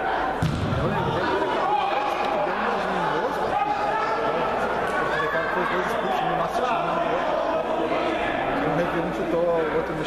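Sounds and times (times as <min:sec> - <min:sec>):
voices talking in echoing hall: 0:00.0 - 0:10.0
single thud: 0:00.4 - 0:00.9.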